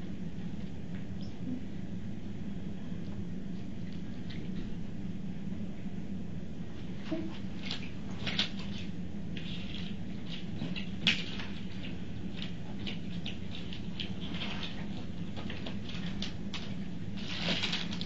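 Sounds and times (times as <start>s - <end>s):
steady low hum: 0.0s - 18.0s
paper and packaging rustling: 7.1s - 18.0s.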